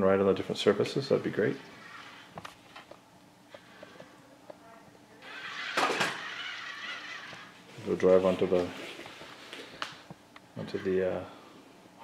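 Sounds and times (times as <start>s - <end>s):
toy robot wheel motors whirring: 5.2s - 7.6s.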